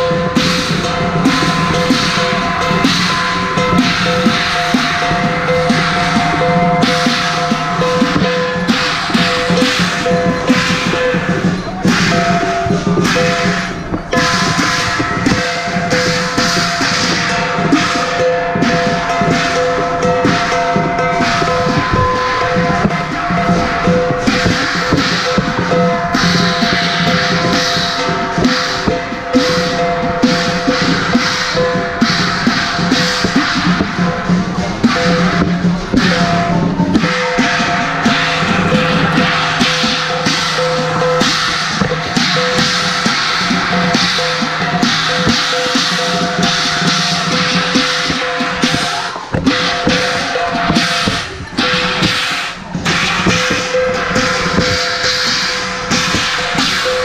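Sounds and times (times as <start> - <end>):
cymbals crashing: 0.0 - 57.0
drum strikes: 0.0 - 57.0
gong: 0.0 - 57.0.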